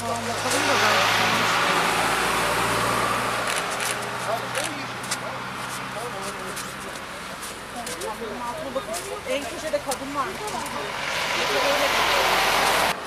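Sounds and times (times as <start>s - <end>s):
low engine hum: 0.0s - 13.0s
vehicle passing: 0.0s - 13.0s.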